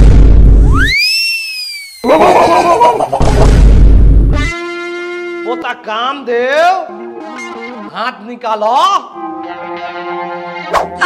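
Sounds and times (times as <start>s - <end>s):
swooping comedy whistle: 0.7s - 2.1s.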